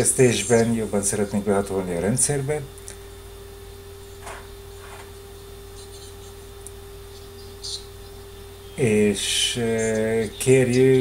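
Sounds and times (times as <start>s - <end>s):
person speaking: 0.0s - 2.7s, 8.8s - 11.0s
electrical hum: 0.0s - 11.0s.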